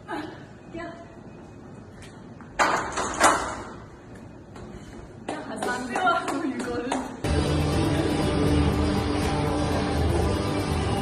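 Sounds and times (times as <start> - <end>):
background music: 7.2 - 11.0.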